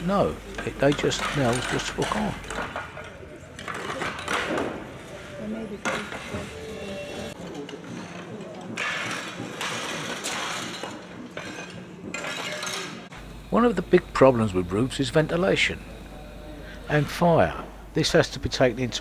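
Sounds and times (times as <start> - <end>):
clay roof tiles clinking: 0.3 - 13.1
indistinct voices: 12.4 - 19.0.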